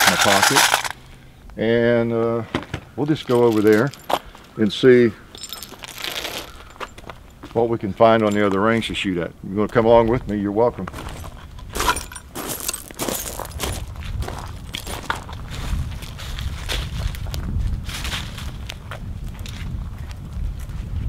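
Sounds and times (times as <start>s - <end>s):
footsteps on gravel and dry leaves: 0.0s - 1.0s, 5.3s - 7.6s, 10.9s - 20.8s.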